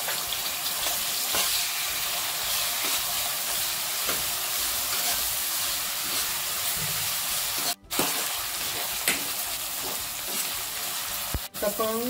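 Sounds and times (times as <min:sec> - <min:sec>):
hot oil sizzling: 0:00.0 - 0:12.0.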